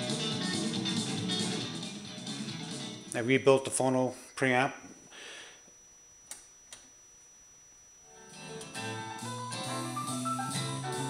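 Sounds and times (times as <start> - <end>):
record music through speakers: 0.0 - 3.1, 8.2 - 11.0.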